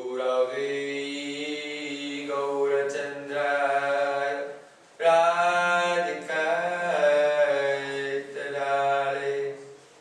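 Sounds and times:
man chanting a prayer: 0.0s - 9.8s.

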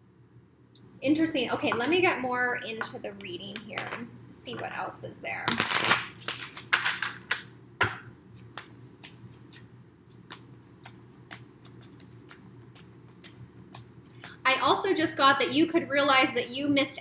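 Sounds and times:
cards being shuffled: 5.5s - 7.2s, 8.4s - 14.4s.

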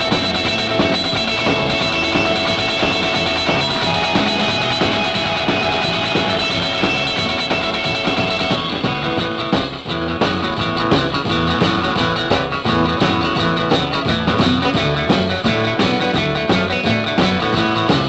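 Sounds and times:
electric guitar lead: 0.0s - 18.0s
rock and roll music: 0.0s - 18.0s.

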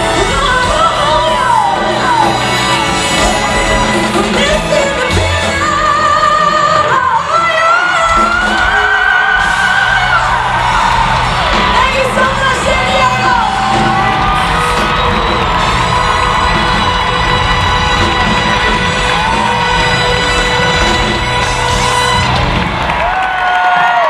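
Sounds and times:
crowd cheering and whooping: 0.0s - 5.2s, 7.4s - 24.0s
live pop-rock band playing: 0.0s - 24.0s.

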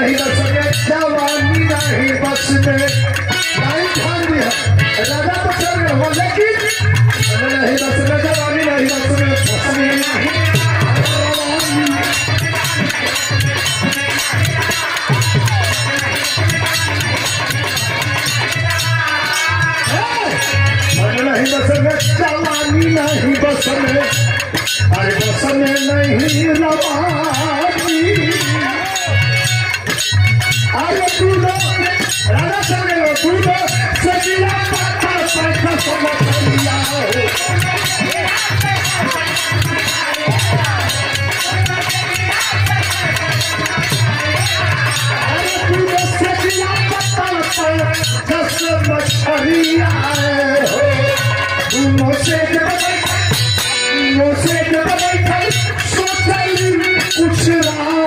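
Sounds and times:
clinking percussion: 0.0s - 58.0s
man singing into a microphone: 0.0s - 58.0s
steady drum beat: 0.0s - 58.0s.

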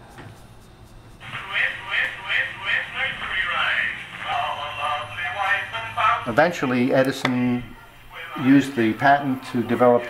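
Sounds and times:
phonograph playing singing voice: 1.2s - 10.0s.

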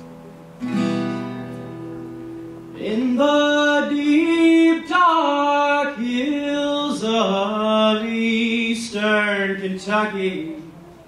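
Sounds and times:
acoustic guitar: 0.0s - 11.0s
man singing folk ballad: 2.7s - 10.8s.

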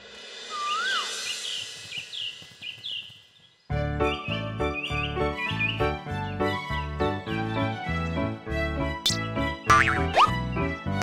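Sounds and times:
bouncy cartoon music: 3.8s - 11.0s.

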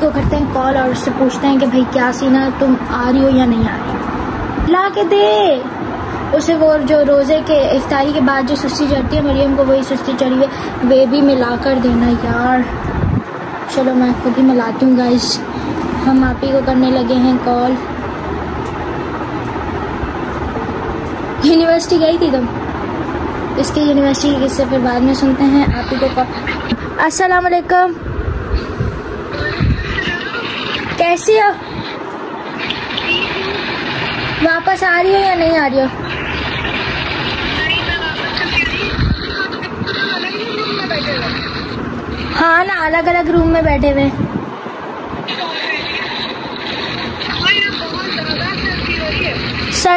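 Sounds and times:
steady rushing noise with low rumble: 0.0s - 49.9s
woman's voice through phone speaker: 23.5s - 28.0s, 29.3s - 44.2s, 45.2s - 49.9s.

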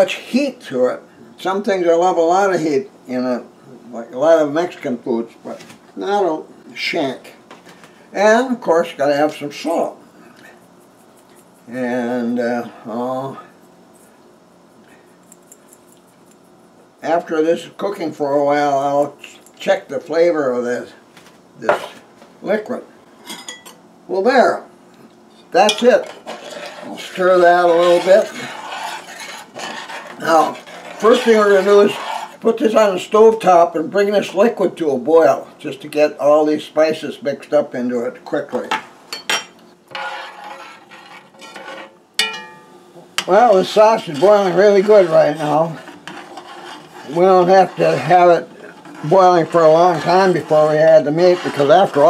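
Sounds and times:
salt shaker shaking: 10.4s - 11.7s
metal spoon scraping a pot: 25.5s - 32.5s, 39.4s - 52.0s.

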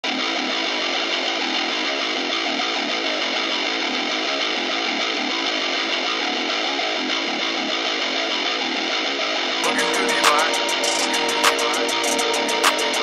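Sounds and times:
distorted electric guitar riff: 0.0s - 13.0s.

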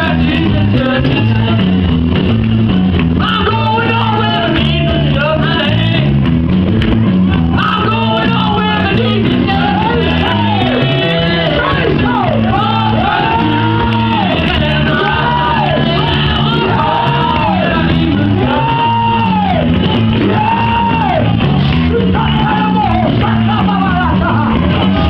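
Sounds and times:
upbeat gospel music: 0.0s - 25.0s
voices shouting and singing: 0.0s - 25.0s.

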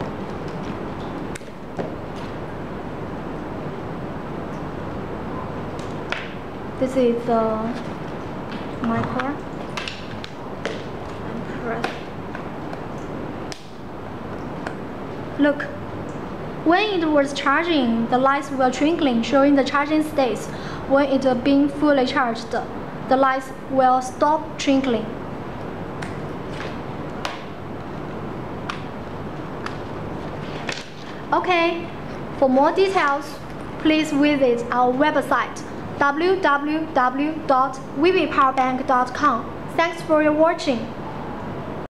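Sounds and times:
steady background hiss: 0.0s - 41.9s.

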